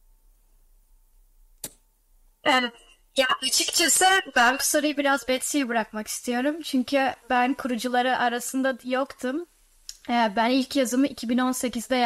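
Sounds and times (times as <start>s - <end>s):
sharp click: 1.6s - 1.8s.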